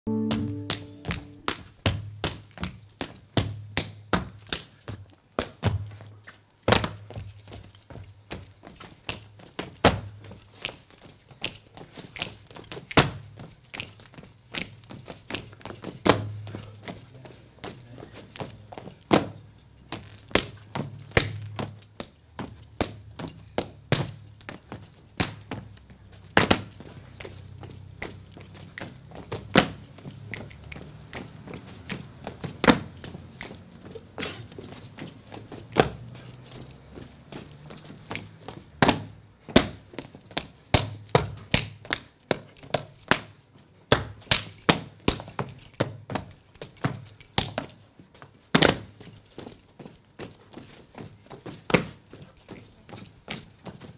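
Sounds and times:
feet stamping: 0:00.7 - 0:53.9
hands slapping boots and legs: 0:28.0 - 0:46.0.

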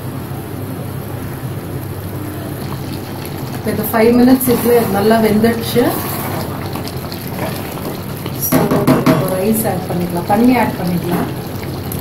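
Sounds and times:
gravy cooking with steady hiss: 0:00.0 - 0:12.0.

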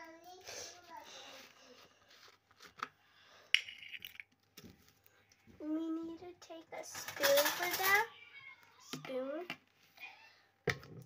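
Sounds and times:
girl's soft voice: 0:00.0 - 0:02.0, 0:05.6 - 0:10.4.

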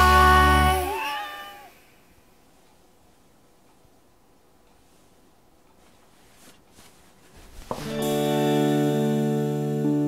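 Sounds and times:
kitten meowing: 0:00.8 - 0:01.7.

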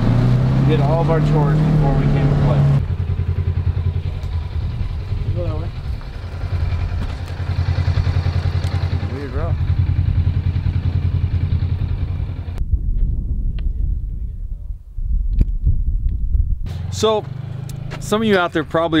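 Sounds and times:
engine running steadily: 0:00.0 - 0:12.6.

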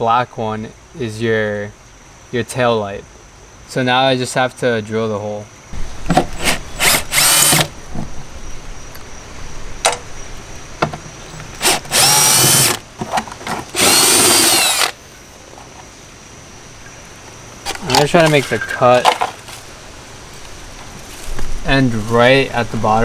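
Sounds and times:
cordless drill whining: 0:06.4 - 0:07.7, 0:11.6 - 0:12.8, 0:13.7 - 0:15.0.

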